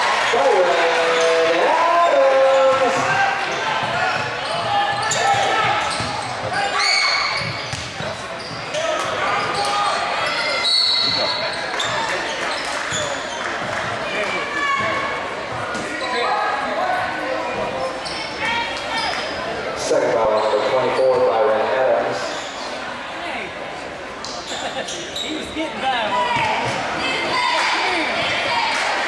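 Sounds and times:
crowd talking and calling out: 0:00.0 - 0:29.0
basketball bouncing on court: 0:03.8 - 0:06.6, 0:07.2 - 0:08.8.

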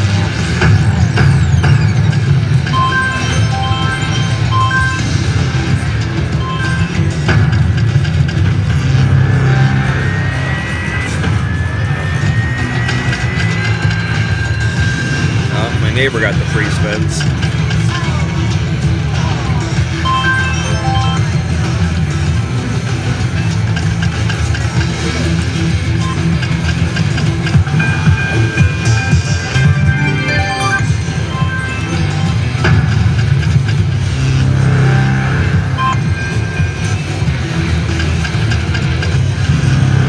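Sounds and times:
electronic game music: 0:00.0 - 0:40.0
slot machine reel spinning: 0:00.0 - 0:40.0
long slowly rising tones: 0:09.1 - 0:15.3.

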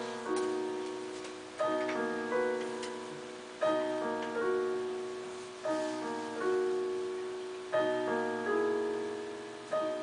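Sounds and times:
digital piano chords: 0:00.0 - 0:10.0.

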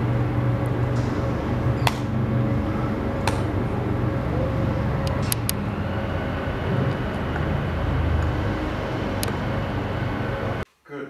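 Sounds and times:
low urban rumble: 0:00.0 - 0:10.6
faint hum: 0:00.0 - 0:11.0.

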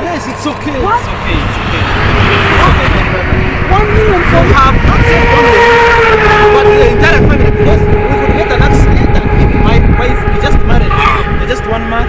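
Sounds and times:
loud low rumble: 0:00.0 - 0:12.0
voices talking and exclaiming: 0:00.0 - 0:12.0.

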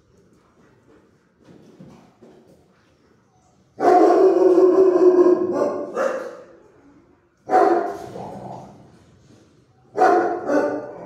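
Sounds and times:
dog barking: 0:03.8 - 0:06.5, 0:07.5 - 0:08.0, 0:09.9 - 0:11.0.

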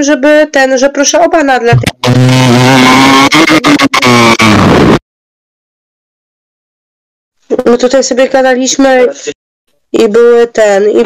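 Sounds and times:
harsh distorted droning tone: 0:01.7 - 0:05.0.

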